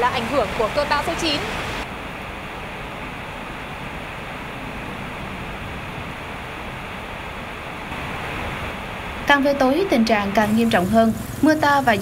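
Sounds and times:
motorbikes wading through floodwater: 0:00.0 - 0:03.4
heavy rain: 0:00.0 - 0:12.0.

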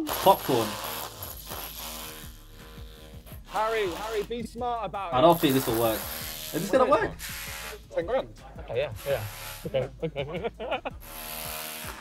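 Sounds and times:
background music beat: 0:00.0 - 0:12.0.

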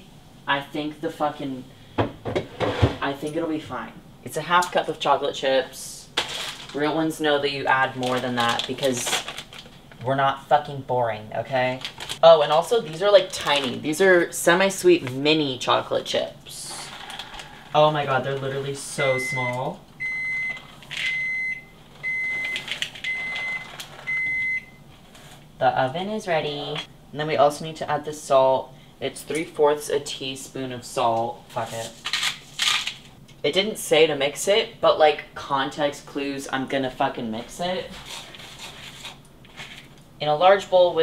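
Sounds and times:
oven beeping: 0:18.9 - 0:24.9.

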